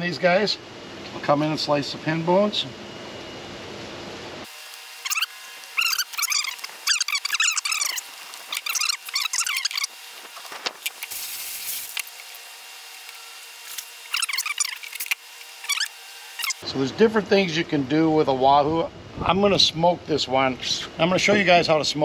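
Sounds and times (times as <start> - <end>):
birds chirping: 5.0 - 10.0.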